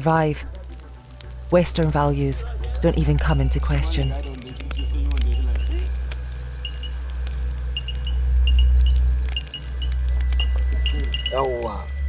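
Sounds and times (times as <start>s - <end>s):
deep low drone: 0.1s - 12.0s
crickets chirping: 0.2s - 12.0s.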